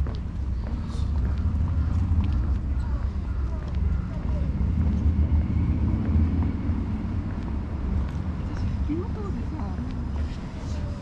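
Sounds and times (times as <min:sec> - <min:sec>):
faint distant voices: 0:00.0 - 0:11.0
low outdoor rumble: 0:00.0 - 0:11.0.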